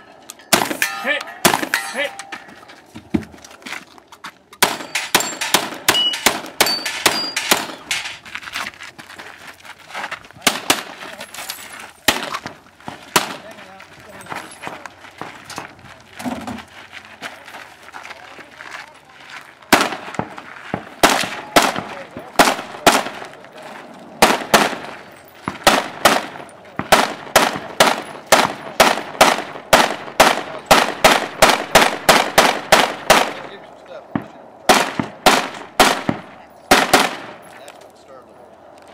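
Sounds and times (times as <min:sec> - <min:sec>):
rapid gunshots: 0:21.0 - 0:23.2, 0:25.6 - 0:33.4, 0:34.7 - 0:37.4.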